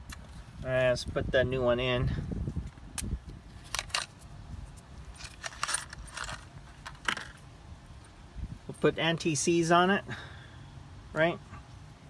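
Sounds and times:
metal tools clinking: 5.1s - 7.4s.

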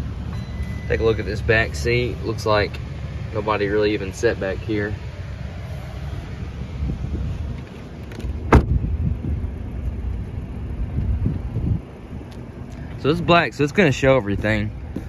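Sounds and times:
steady low rumble: 0.0s - 15.0s
car door shutting: 7.5s - 8.9s.

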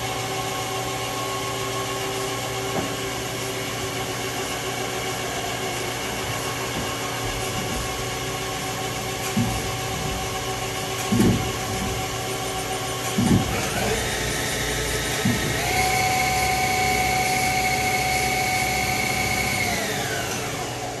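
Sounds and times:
lathe spindle whining: 0.0s - 21.0s
machine clunks: 11.0s - 12.2s, 13.1s - 14.1s.

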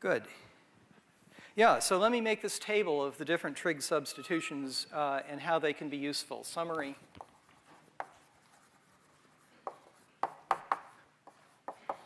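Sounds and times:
chalk tapping and scraping on blackboard: 6.7s - 12.0s.

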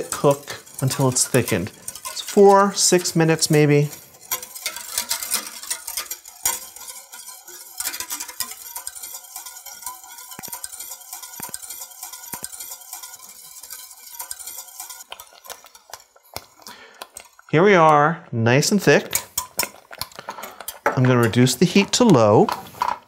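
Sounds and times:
whisk scraping a metal pot: 0.0s - 23.0s.

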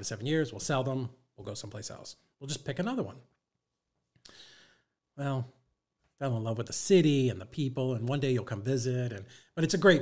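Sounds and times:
man speaking: 0.0s - 3.3s, 5.2s - 5.6s, 6.2s - 10.0s
man's short airy breath: 4.2s - 5.0s.

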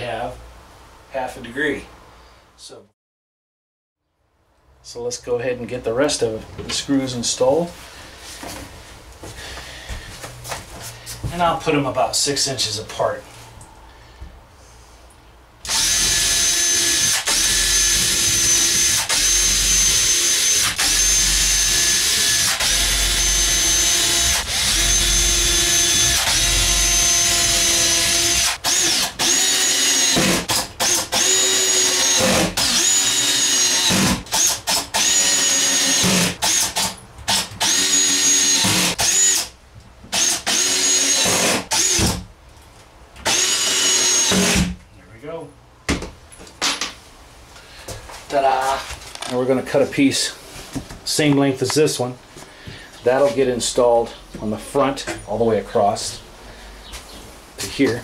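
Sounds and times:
cordless drill driving screws: 15.6s - 39.5s, 40.1s - 42.2s, 43.2s - 44.7s.

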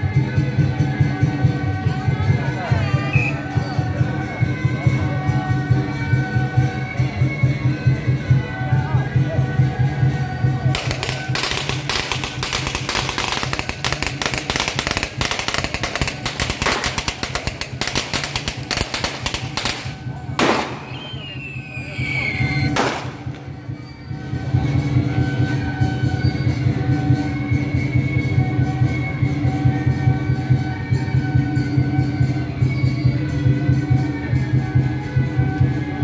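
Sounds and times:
procession music: 4.8s - 20.4s
firecrackers crackling: 10.4s - 23.8s
sharp bangs: 10.7s - 21.2s, 22.7s - 23.4s.

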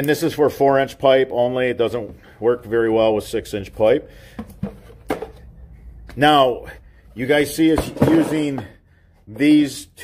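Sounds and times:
plastic basins handling noise: 3.8s - 6.3s, 7.4s - 9.6s.

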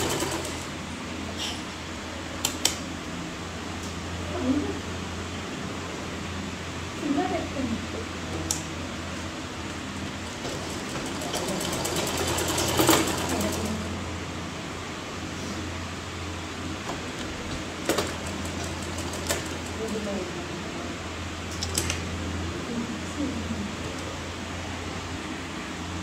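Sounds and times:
sewing machine stitching: 0.0s - 0.7s, 10.3s - 13.9s.

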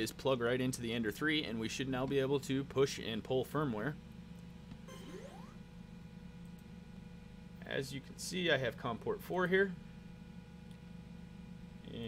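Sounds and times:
low steady hum: 0.0s - 12.0s
faint short rising tone: 4.9s - 5.6s.

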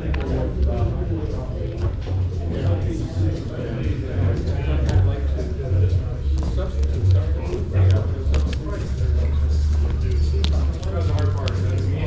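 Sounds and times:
indistinct voices: 0.0s - 12.0s
low rumble of busy hall: 0.0s - 12.0s.

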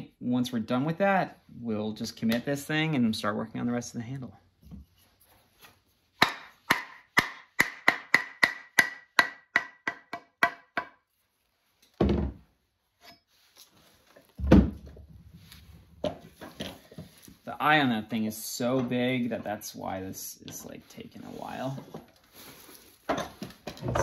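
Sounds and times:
mallet tapping on axe head: 6.2s - 11.0s.

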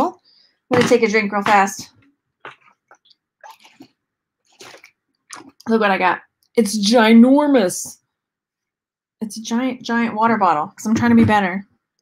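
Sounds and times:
person sipping and swallowing: 2.5s - 5.7s.

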